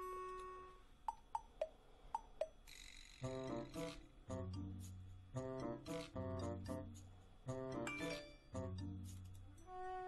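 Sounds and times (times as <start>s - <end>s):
background music: 0.0s - 1.6s, 3.2s - 10.0s
sharp pitched ticks: 1.0s - 3.1s.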